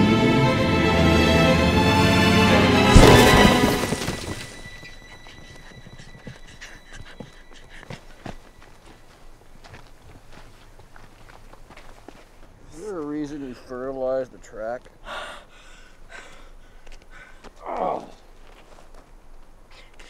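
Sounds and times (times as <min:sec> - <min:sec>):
music: 0:00.0 - 0:08.8
race car crash: 0:02.6 - 0:04.9
footsteps on dirt: 0:02.9 - 0:13.6, 0:16.8 - 0:19.6.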